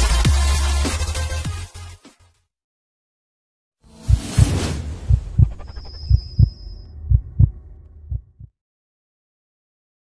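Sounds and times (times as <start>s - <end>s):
loud whoosh: 3.9s - 7.9s
heartbeat thumps: 4.0s - 8.5s.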